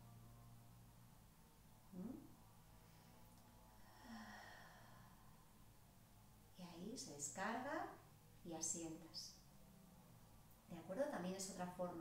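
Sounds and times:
faint low hum: 0:00.0 - 0:12.0
woman sighing: 0:03.9 - 0:04.9.

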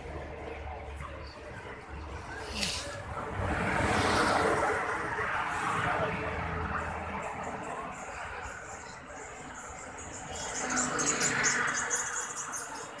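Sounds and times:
background noise: 0:00.0 - 0:13.0.

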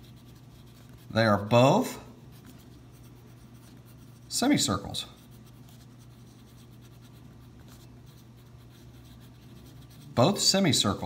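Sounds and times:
pen scratching on paper: 0:00.0 - 0:01.5, 0:02.2 - 0:10.7
steady low hum: 0:00.0 - 0:11.0.

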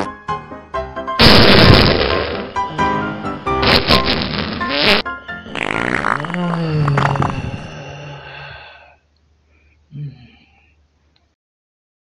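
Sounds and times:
comedic background music: 0:00.0 - 0:05.6
fart sound effects: 0:01.2 - 0:02.7, 0:03.6 - 0:07.7.

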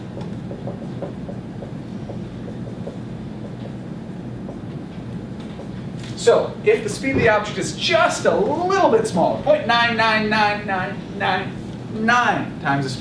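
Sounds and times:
marker writing on whiteboard: 0:00.0 - 0:05.8
low room hum: 0:00.0 - 0:13.0.

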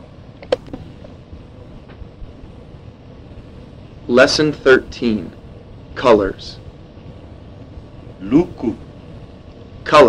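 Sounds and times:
rumbling background noise: 0:00.0 - 0:10.0.

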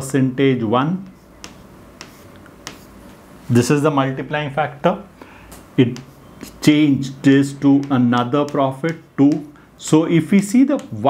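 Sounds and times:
marker clicking on whiteboard: 0:01.0 - 0:03.0, 0:05.9 - 0:06.8, 0:07.4 - 0:09.6, 0:10.3 - 0:11.0.

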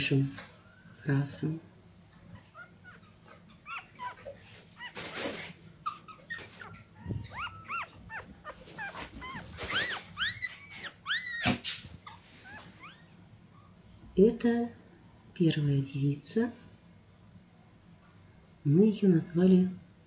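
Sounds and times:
puppy squeaking and whimpering: 0:02.3 - 0:13.2
rustles: 0:04.2 - 0:13.0.

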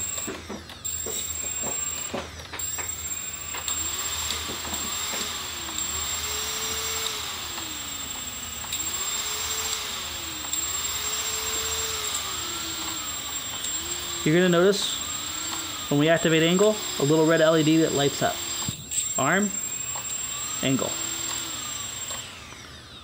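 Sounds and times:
quadcopter motors whining: 0:00.0 - 0:23.0.

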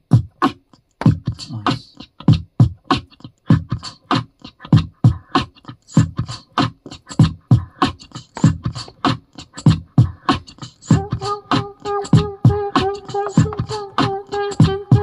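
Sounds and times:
beatboxing into microphone: 0:00.0 - 0:15.0.

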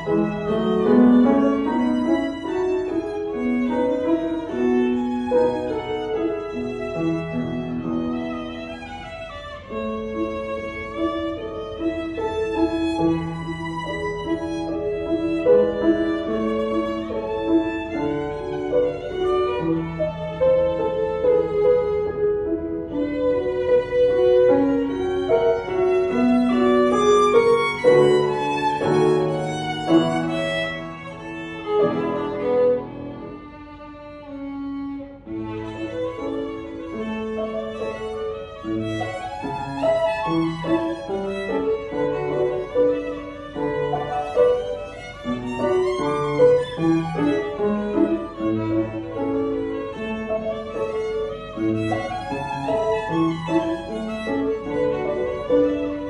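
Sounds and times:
piano accompaniment: 0:00.0 - 0:56.0
violin melody: 0:00.0 - 0:56.0.

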